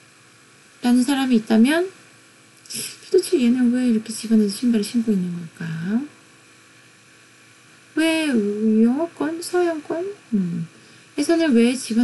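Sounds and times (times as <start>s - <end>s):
faint electrical hum and hiss: 0.0s - 12.0s.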